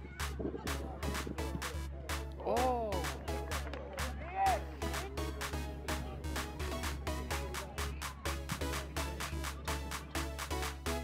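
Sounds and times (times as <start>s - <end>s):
music with steady beat and bass: 0.0s - 11.0s.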